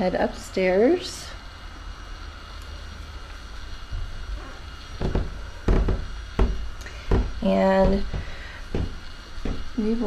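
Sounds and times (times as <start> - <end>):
footsteps on carpeted stairs: 3.9 - 10.0.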